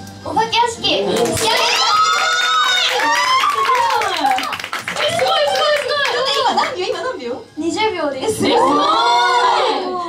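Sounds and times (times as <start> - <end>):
hand clapping: 1.1 - 7.1.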